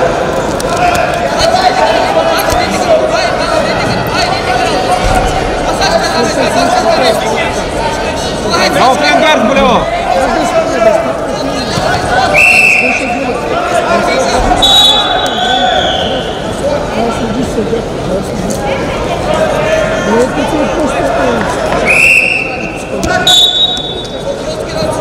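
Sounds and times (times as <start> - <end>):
voices echoing in a hall: 0.0 - 25.0.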